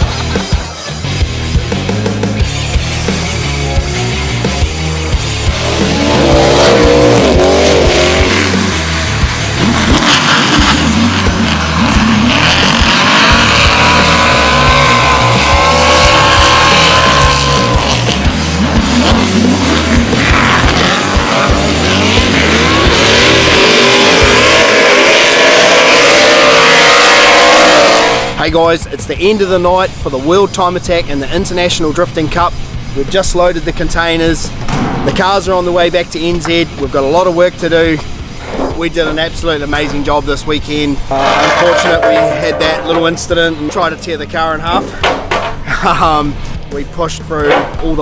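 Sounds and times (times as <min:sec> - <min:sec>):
music with heavy beat: 0:00.0 - 0:25.3
car engines revving hard: 0:00.0 - 0:48.0
tyres squealing: 0:41.0 - 0:45.6.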